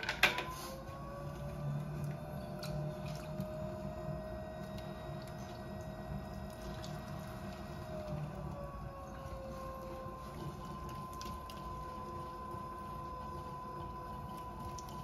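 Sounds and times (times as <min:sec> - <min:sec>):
potter's wheel motor hum and whine: 0:00.0 - 0:15.0.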